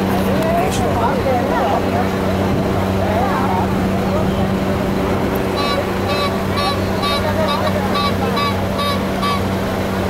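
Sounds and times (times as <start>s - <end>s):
voices in background: 0.0s - 9.6s
idling vehicles hum: 0.0s - 10.0s
vehicle warning beeps: 5.6s - 9.5s.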